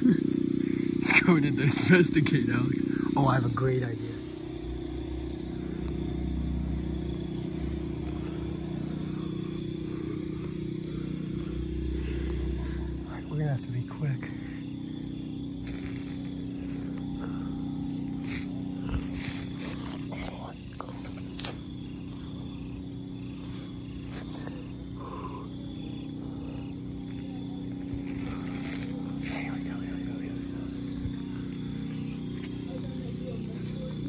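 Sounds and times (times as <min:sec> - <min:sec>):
faint voices: 0:00.0 - 0:34.0
steady low hum: 0:00.0 - 0:34.0.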